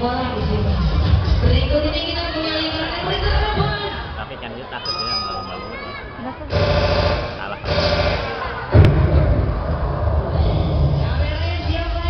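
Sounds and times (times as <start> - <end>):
music over loudspeaker: 0.0 - 5.0, 6.5 - 12.0.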